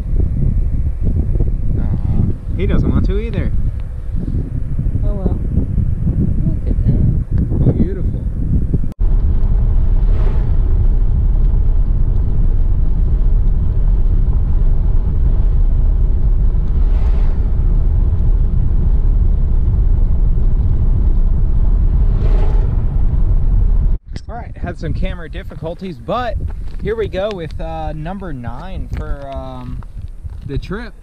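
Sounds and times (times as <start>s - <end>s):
car engine rumble: 0.0s - 31.0s
tyres on road: 8.3s - 31.0s
oncoming vehicle passing: 9.0s - 24.0s.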